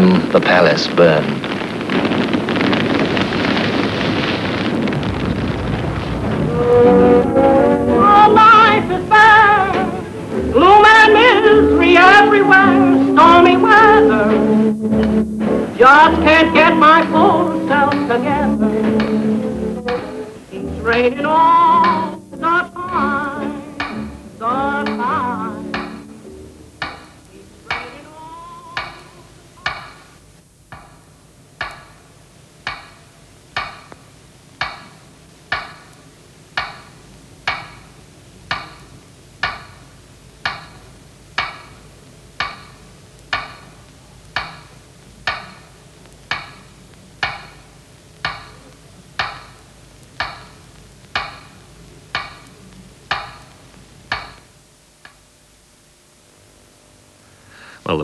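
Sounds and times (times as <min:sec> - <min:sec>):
song with singing: 0:07.0 - 0:26.3, 0:27.3 - 0:29.7.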